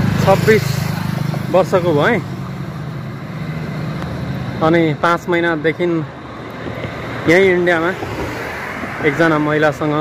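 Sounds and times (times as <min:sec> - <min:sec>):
motor vehicle engine droning: 0:00.0 - 0:10.0.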